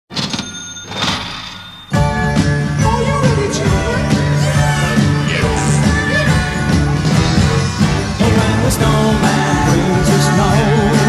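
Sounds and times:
metal clatter with bell-like ringing: 0.1 - 2.0.

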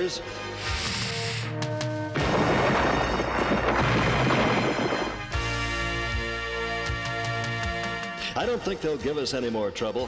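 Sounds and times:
boulders tumbling rockslide: 2.2 - 5.3.

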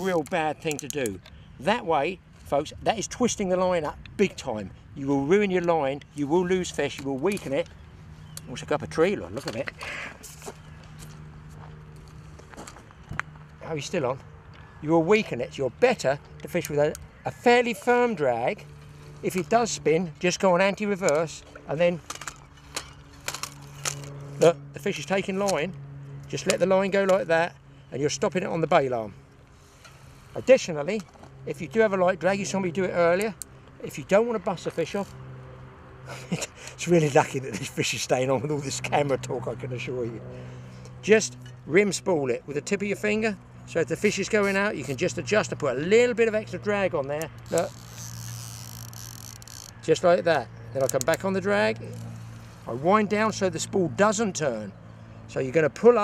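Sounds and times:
fishing reel clicks: 47.1 - 49.9.

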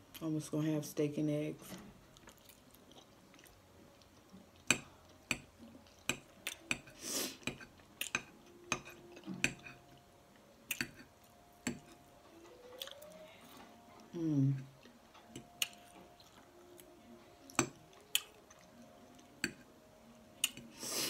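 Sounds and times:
chewing: 1.7 - 10.0, 10.7 - 19.7
person humming: 14.1 - 14.7.

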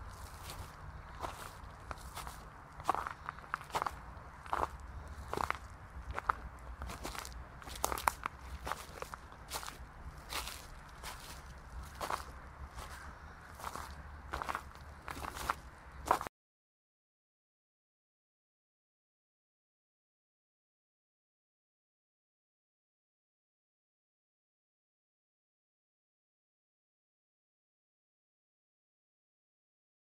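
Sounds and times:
footsteps crunching on path: 0.0 - 16.3
steady low rumble: 0.0 - 16.3.

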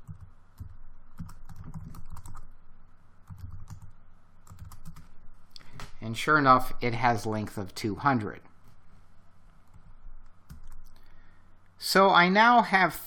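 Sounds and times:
typing on a computer keyboard: 0.0 - 2.5, 3.3 - 5.1, 10.5 - 11.0.

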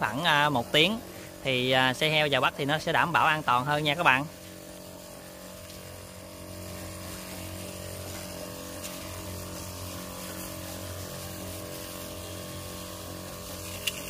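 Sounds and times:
liquid spraying hiss: 0.0 - 14.0
sprayer pump humming: 0.0 - 14.0.

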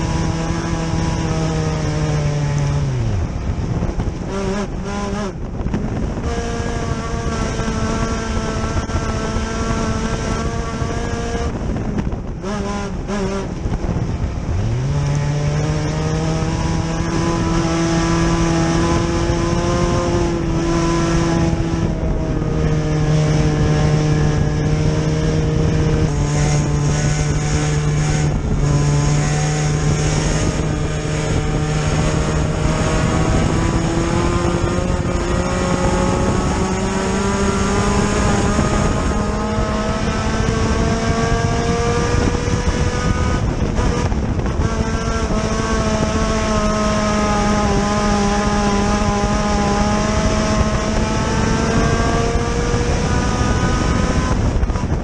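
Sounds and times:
race car engine at high revs: 0.0 - 55.0.

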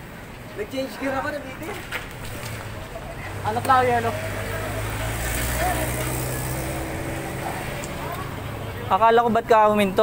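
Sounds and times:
street noise: 0.0 - 10.0
vehicle engine humming: 0.0 - 10.0.

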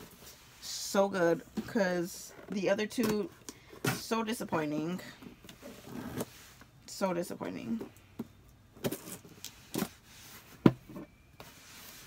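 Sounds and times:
cardboard box knocks and rustles: 10.6 - 11.1.

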